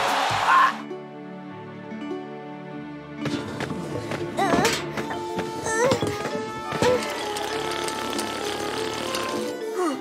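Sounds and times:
motor-like buzzing rattle: 0:07.0 - 0:09.5.

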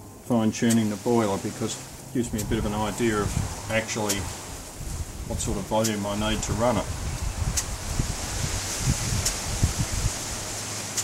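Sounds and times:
low rumble: 0:00.0 - 0:10.7
sharp clicks: 0:07.5 - 0:07.7.

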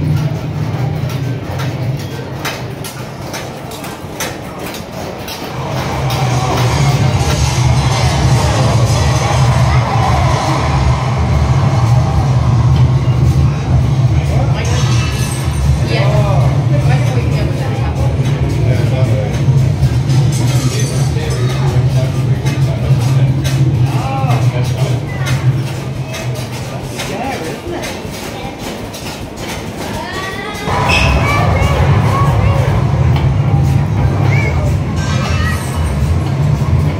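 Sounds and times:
faint voices: 0:00.0 - 0:36.9
low rumble with rattling: 0:30.6 - 0:36.9.

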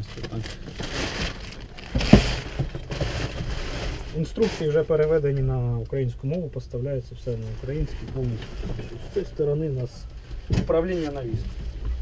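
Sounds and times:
rustling and knocking in cab: 0:00.0 - 0:05.1, 0:07.6 - 0:12.0.

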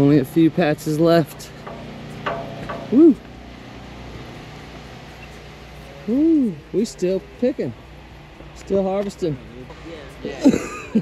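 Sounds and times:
low background hum: 0:00.0 - 0:11.0
person whooping: 0:02.9 - 0:03.2.

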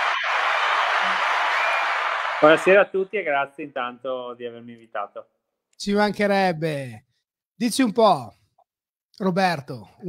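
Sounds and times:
crowd applause: 0:00.0 - 0:02.8.

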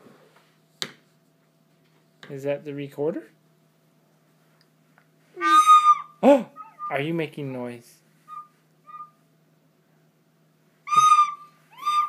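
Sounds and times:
recorder high whistling note: 0:05.4 - 0:07.1, 0:08.3 - 0:09.2, 0:10.9 - 0:12.0.

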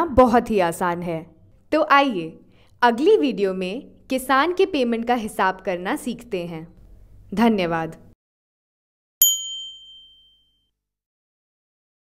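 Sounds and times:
bright chime: 0:09.2 - 0:10.7.

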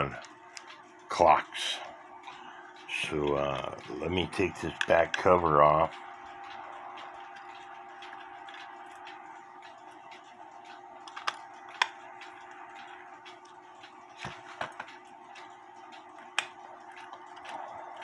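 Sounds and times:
pendulum clock ticking: 0:00.0 - 0:18.0
steady background hum: 0:00.0 - 0:18.0.

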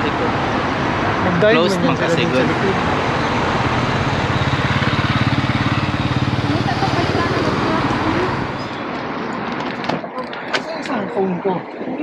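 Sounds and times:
street traffic noise: 0:00.0 - 0:12.0
vehicle engine running: 0:01.0 - 0:08.9.

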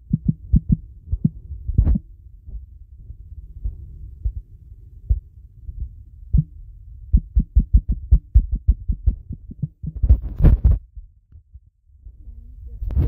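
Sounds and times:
soft low thumps: 0:00.0 - 0:11.8
steady low hum: 0:00.0 - 0:13.0.

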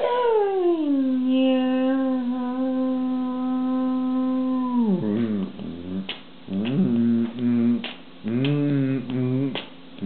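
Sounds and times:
man singing a long note: 0:01.8 - 0:09.6.

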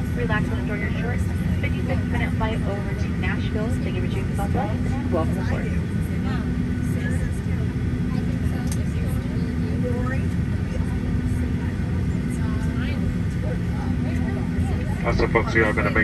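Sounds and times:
aircraft cabin hum: 0:00.0 - 0:16.0
faint passenger chatter: 0:00.0 - 0:16.0.

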